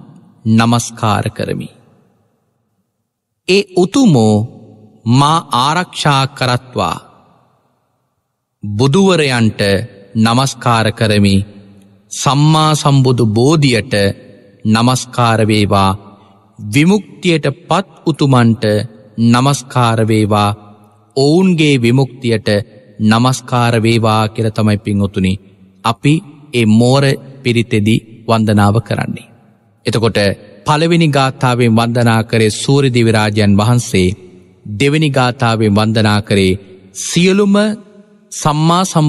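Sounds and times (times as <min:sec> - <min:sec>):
man chanting: 0:00.0 - 0:01.8, 0:03.5 - 0:07.2, 0:08.6 - 0:39.0.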